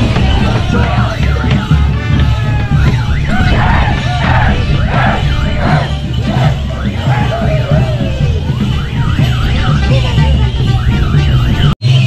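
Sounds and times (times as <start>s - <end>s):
festival procession music: 0.0s - 12.0s.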